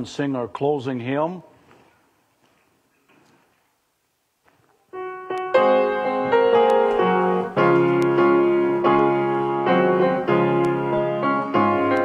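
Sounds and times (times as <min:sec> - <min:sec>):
piano playing hymn chords: 0:04.9 - 0:12.0.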